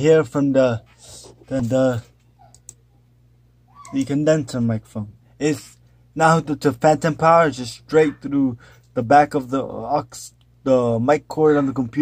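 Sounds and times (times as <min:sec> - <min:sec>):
low electrical hum: 0:00.0 - 0:12.0
man's voice: 0:06.2 - 0:12.0.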